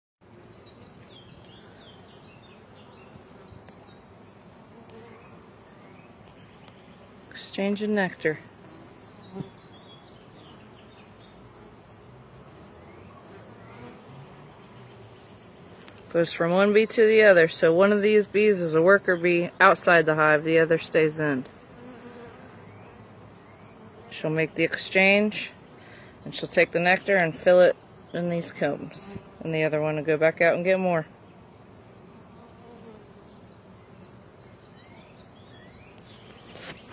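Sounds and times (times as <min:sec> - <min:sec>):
bees buzzing: 0:00.2 - 0:36.9.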